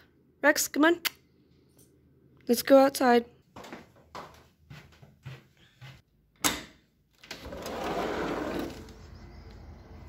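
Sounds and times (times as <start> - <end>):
sliding door rolling open: 7.2 - 10.0.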